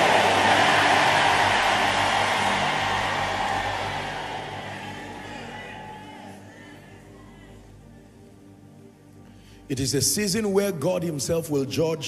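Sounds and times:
congregation cheering and shouting: 0:00.0 - 0:07.7.

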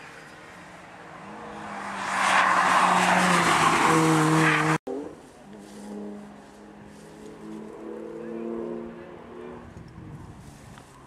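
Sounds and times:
rally car engine approaching: 0:00.0 - 0:10.6.

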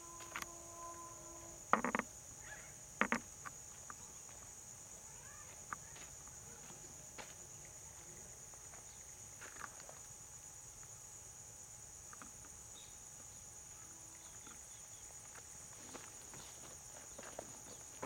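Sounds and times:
insects chirring: 0:00.0 - 0:18.0.

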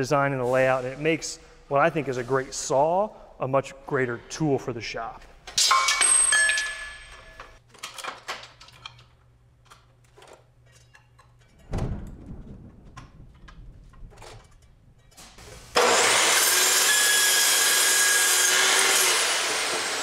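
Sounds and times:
chop saw shrieking through metal: 0:15.7 - 0:20.0.

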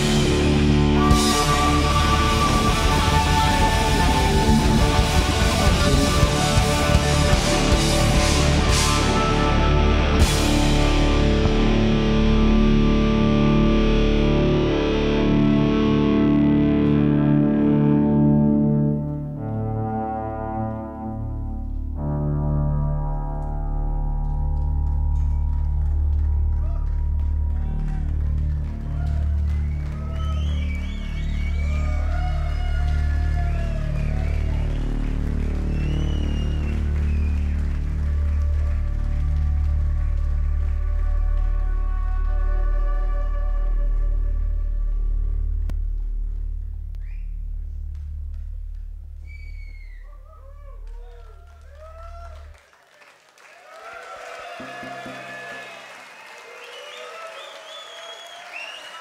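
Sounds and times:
distorted rock band chord: 0:00.0 - 0:16.2
electric violin sliding notes: 0:00.0 - 0:25.0
low bass drone: 0:00.0 - 0:49.3.

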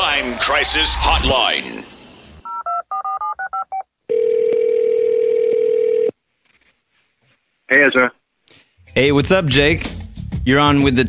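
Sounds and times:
phone line ringing tone: 0:02.5 - 0:06.1.

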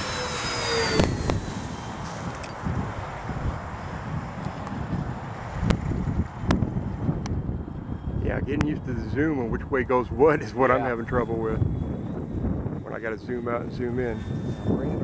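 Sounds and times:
model plane propellers whining past: 0:00.0 - 0:15.0
wind rumble on microphone: 0:00.0 - 0:15.0.

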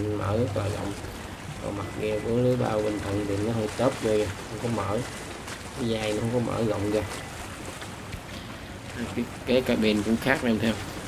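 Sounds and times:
boat engine: 0:00.0 - 0:11.0
water rushing from bow wave: 0:00.0 - 0:11.0.

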